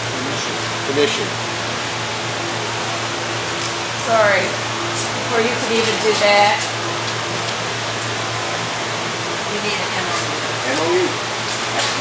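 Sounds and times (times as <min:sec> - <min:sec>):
constant low hum: 0:00.0 - 0:12.0.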